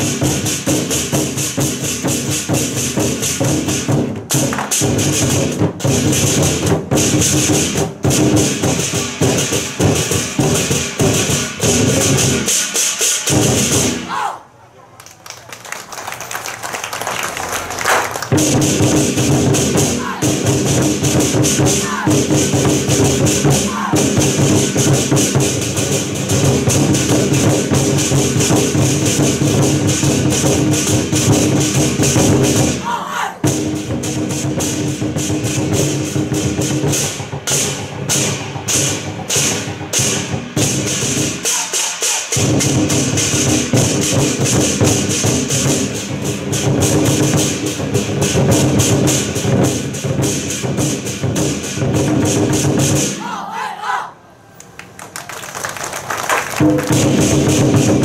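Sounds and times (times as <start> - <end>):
barrel drums beaten in rolls: 0.0 - 14.0, 17.9 - 53.3, 56.6 - 58.0.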